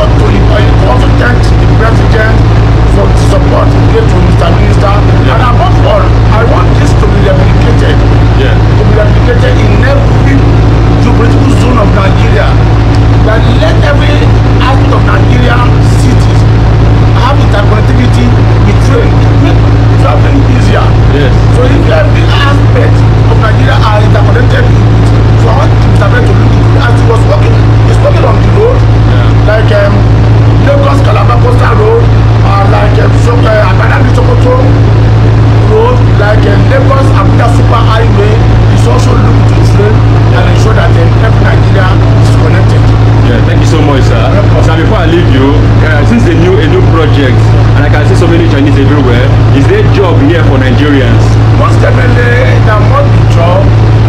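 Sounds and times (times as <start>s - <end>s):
loud steady low hum: 0.0s - 54.0s
man talking: 0.0s - 54.0s.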